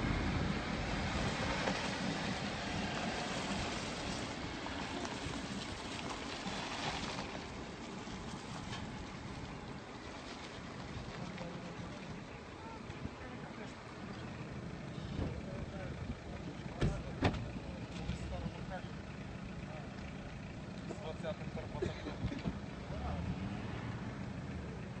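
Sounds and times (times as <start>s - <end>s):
engine humming: 0.0s - 25.0s.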